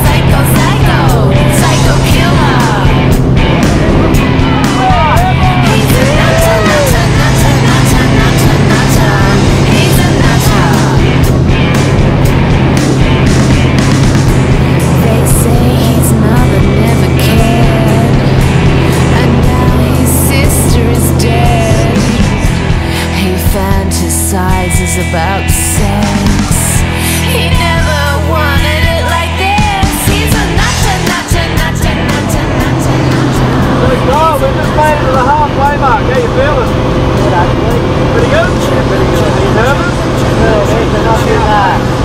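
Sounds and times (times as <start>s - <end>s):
light plane engine droning: 0.0s - 42.0s
rock song with singing: 0.0s - 42.0s.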